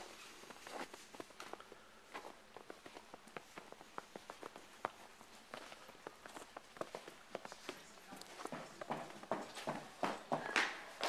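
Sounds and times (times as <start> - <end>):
footsteps on snow: 0.0 - 9.7.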